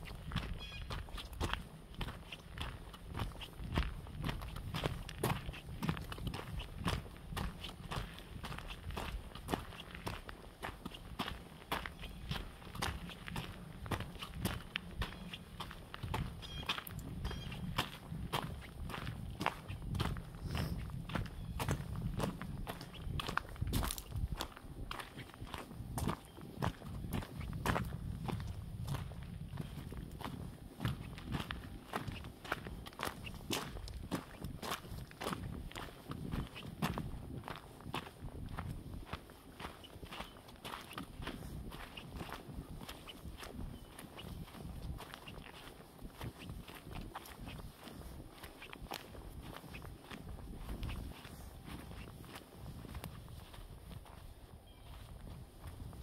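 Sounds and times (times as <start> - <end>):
footsteps crunching on gravel: 0.0 - 56.0.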